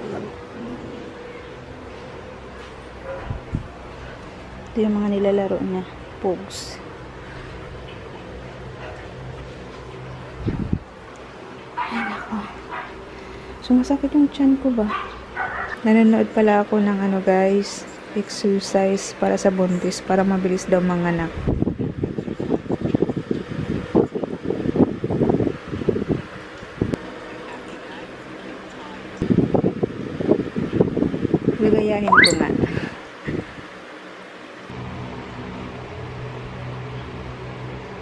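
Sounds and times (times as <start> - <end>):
wind buffeting microphone: 10.4 - 10.9.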